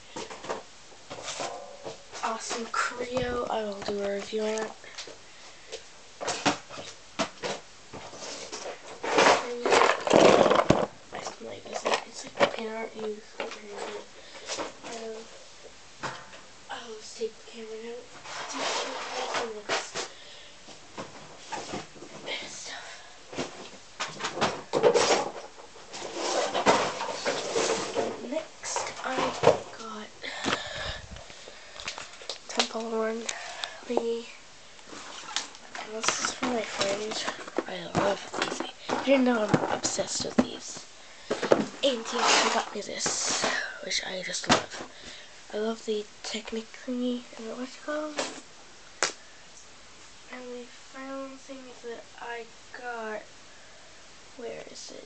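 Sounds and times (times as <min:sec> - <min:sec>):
cardboard box rustling and scraping: 0:18.2 - 0:20.1, 0:24.3 - 0:29.7, 0:41.4 - 0:43.6.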